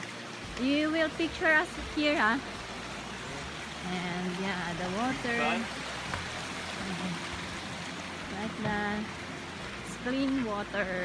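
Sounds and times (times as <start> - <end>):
stream flowing over rocks: 0.0 - 11.0.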